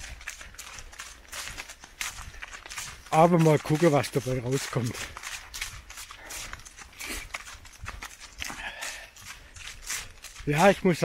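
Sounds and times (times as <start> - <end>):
running footsteps on path: 0.0 - 11.0.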